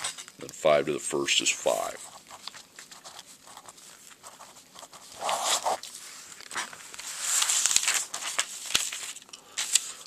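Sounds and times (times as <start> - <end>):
notebook paper rustling: 1.2 - 10.0.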